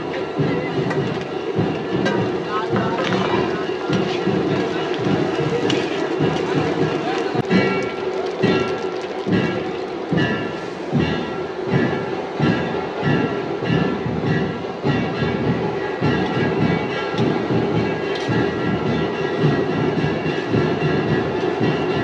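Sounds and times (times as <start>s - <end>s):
background music: 0.0s - 22.0s.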